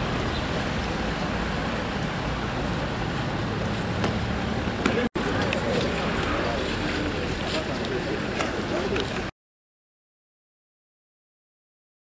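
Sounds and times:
road traffic rumble: 0.0 - 9.3.

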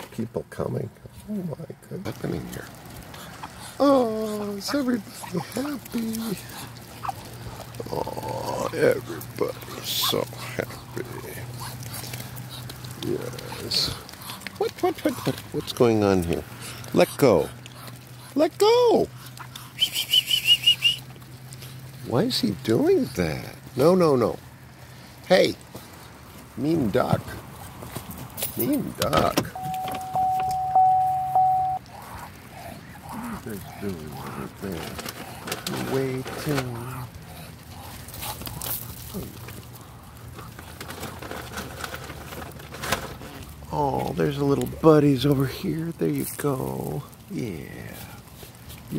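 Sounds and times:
ducks pattering on pavement: 2.0 - 28.9, 31.8 - 48.9.

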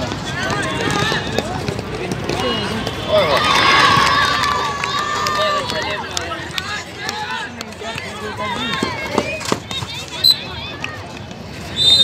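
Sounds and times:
players running on a court: 0.0 - 12.0.

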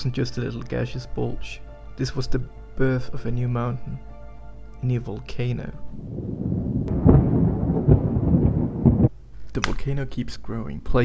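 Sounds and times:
deep rumbling sound effect: 6.0 - 9.1.

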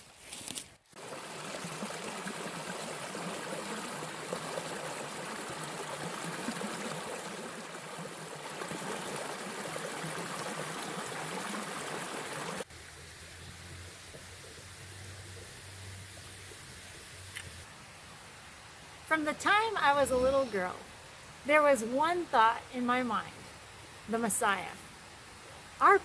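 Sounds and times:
creek running over rocks: 0.9 - 26.0.

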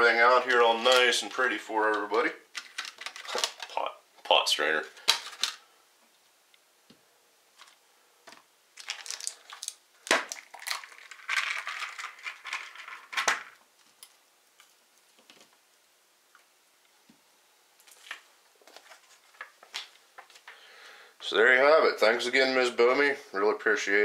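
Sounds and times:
packaging crinkling: 0.3 - 5.7, 7.6 - 15.5.

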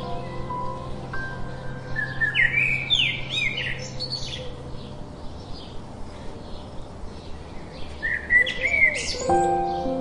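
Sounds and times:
sparrows chirping: 0.0 - 10.0.

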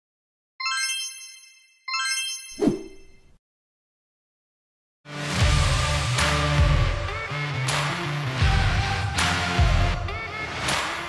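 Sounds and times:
bright chime ding: 0.6 - 3.3.

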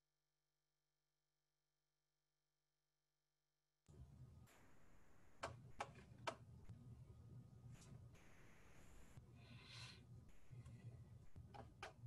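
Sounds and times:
low steady hum: 3.9 - 12.0.

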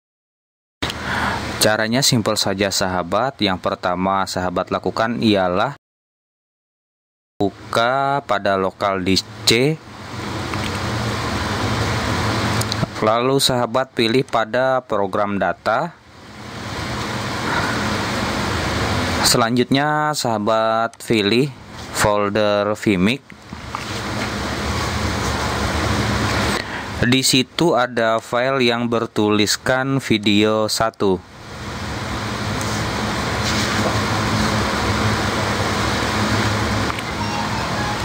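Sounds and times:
loud even hiss: 31.8 - 38.0
rushing hiss: 32.6 - 34.8.

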